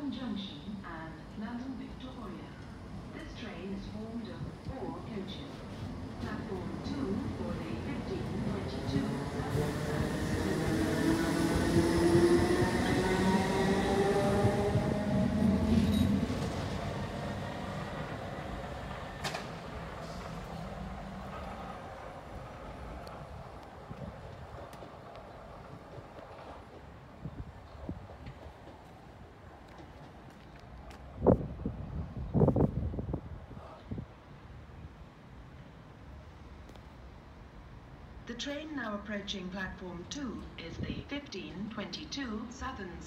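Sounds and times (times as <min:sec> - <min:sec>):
electric train pulling away: 0:07.3 - 0:23.8.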